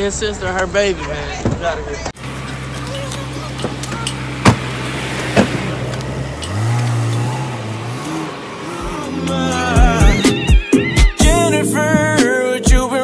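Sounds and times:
car engine idling and revving: 0.0s - 12.2s
sharp knocks: 3.6s - 5.6s.

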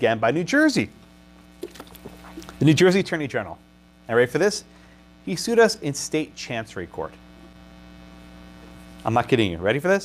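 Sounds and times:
electrical mains hum: 0.0s - 10.0s
man speaking: 2.6s - 7.2s, 9.0s - 10.0s.

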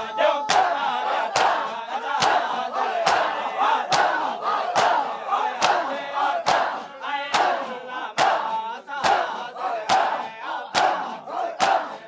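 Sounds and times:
crowd beating chests in unison: 0.0s - 12.0s.

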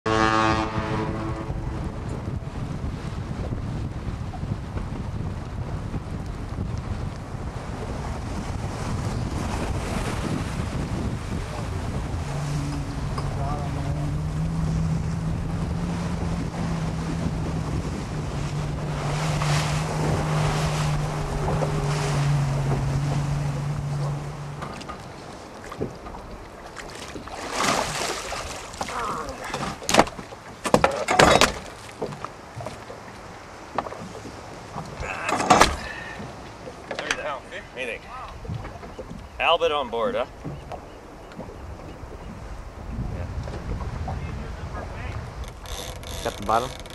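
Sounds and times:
boat crossing choppy water: 0.0s - 46.9s
boat engine drone: 0.1s - 30.6s, 31.5s - 46.9s
wind buffeting microphone: 0.1s - 30.6s, 31.4s - 46.9s.

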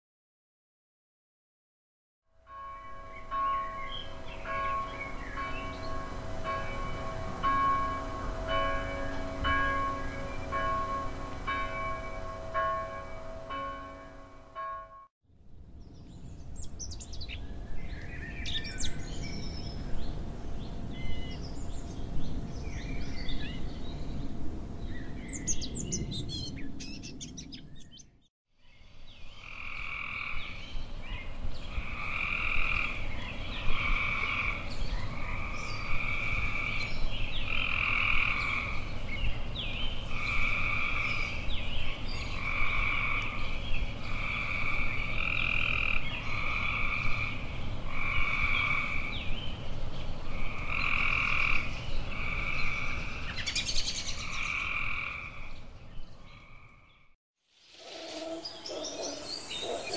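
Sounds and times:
outdoor background noise: 2.3s - 59.9s
birds chirping: 2.9s - 14.9s, 57.8s - 59.9s.

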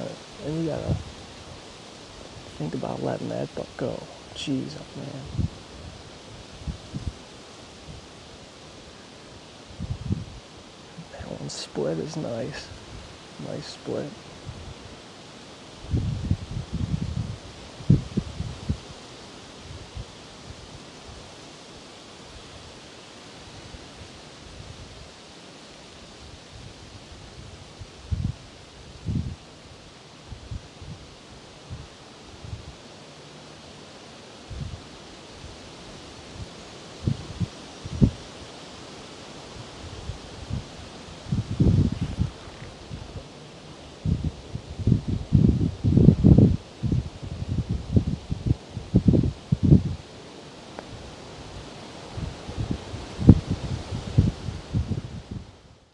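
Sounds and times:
faint steady hiss: 0.0s - 55.9s
low rustles: 0.0s - 55.9s.

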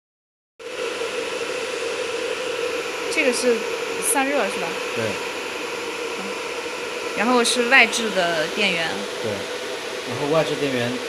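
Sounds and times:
cooling fans whirring: 0.6s - 11.0s
constant hum: 0.7s - 11.0s.

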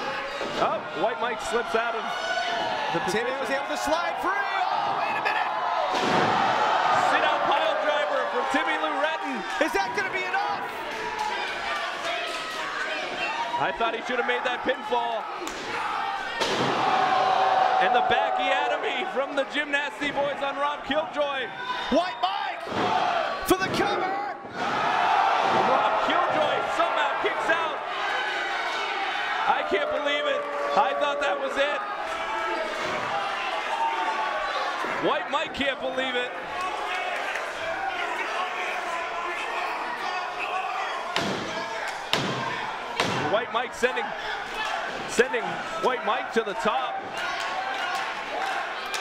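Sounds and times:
crowd noise: 0.0s - 49.0s.

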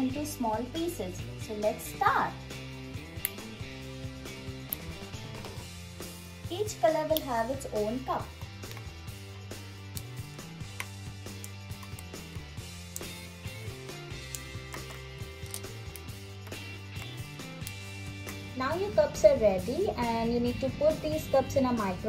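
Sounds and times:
soft background music: 0.0s - 22.0s
crayon pieces dropping into cups: 14.2s - 17.2s.

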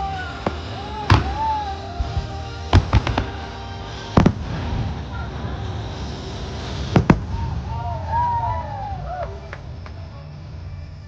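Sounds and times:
firework shells bursting: 0.0s - 10.4s
show music: 0.0s - 10.5s.

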